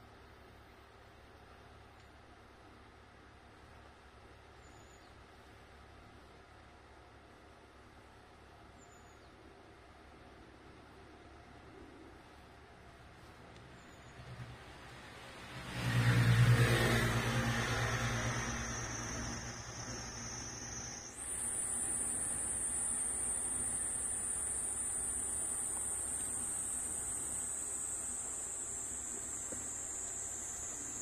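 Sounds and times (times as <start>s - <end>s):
car passing by: 14.2s - 24.3s
high-pitched insect buzz: 16.8s - 31.0s.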